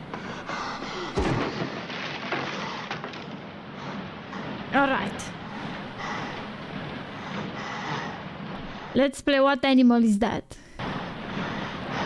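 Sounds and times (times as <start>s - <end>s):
heavy deep thud: 0.1s - 2.0s.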